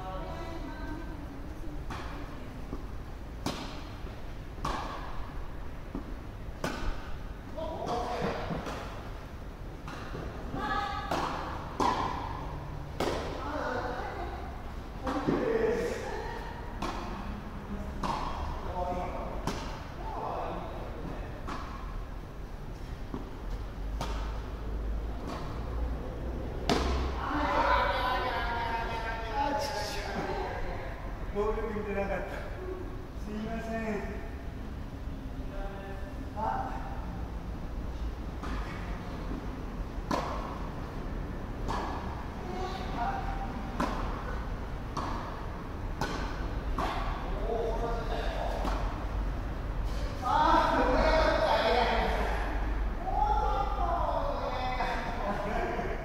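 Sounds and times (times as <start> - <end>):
tennis ball hit by rackets: 1.9 - 3.9, 4.6 - 7.2, 9.8 - 10.4, 11.0 - 13.5, 16.8 - 17.3, 17.9 - 18.6, 19.3 - 19.9, 21.4 - 22.0, 23.1 - 25.7, 26.5 - 27.8, 38.4 - 40.8, 41.5 - 42.2, 43.5 - 47.4, 48.5 - 49.1.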